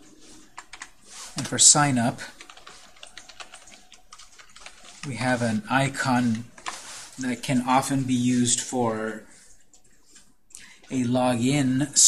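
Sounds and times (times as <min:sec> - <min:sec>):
keyboard typing clicks: 0:02.4 - 0:05.1.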